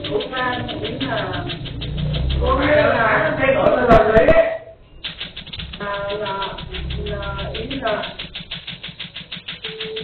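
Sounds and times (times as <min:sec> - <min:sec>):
laser machine snapping clicks: 0:00.0 - 0:04.0, 0:05.0 - 0:10.0.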